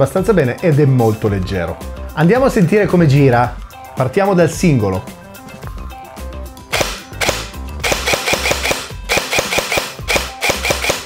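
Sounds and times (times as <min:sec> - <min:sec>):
airsoft gun single shots: 0:06.7 - 0:11.0.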